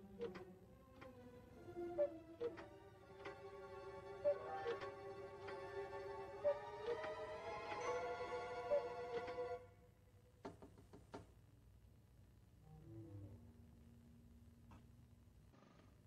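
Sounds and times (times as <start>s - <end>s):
soft orchestral film music: 0.0s - 10.0s.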